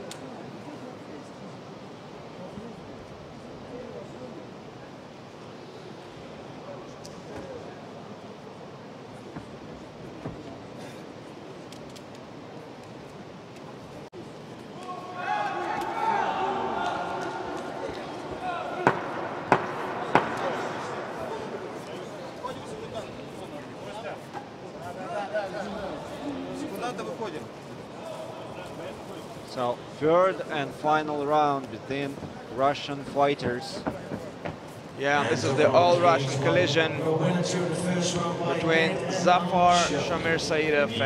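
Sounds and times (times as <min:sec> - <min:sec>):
hall background noise: 0:00.0 - 0:41.0.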